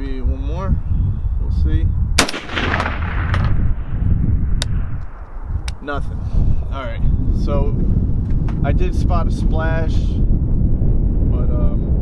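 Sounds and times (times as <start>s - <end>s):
rifle shot: 2.2s - 4.0s.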